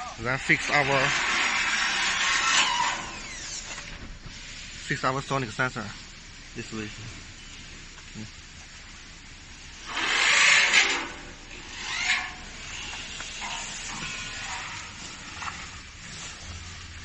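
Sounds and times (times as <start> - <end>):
hiss bursts: 0.0 - 17.0.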